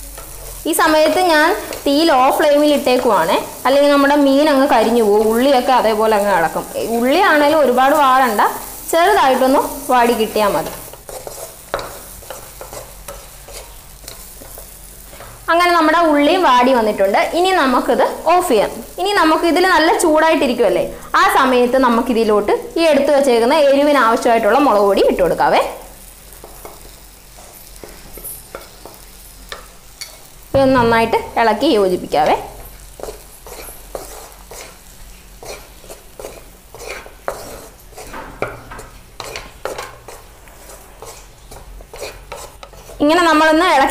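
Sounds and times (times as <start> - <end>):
food frying in a pan: 0.0 - 43.9
woman talking: 0.7 - 10.8, 15.5 - 25.8, 30.6 - 32.6, 43.0 - 43.9
wooden spatula scraping pan: 10.2 - 15.4, 32.3 - 43.1.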